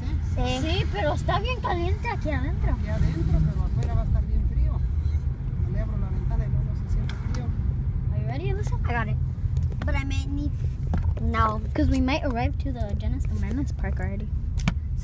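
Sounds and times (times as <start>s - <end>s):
girl talking: 0.0s - 2.8s, 11.2s - 14.2s
car cabin road rumble: 0.0s - 15.0s.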